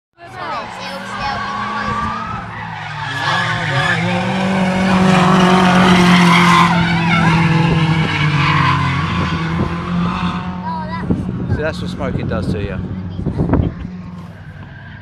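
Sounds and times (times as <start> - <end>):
tyres squealing: 0.2 - 9.2
car engine at high revs: 0.2 - 15.0.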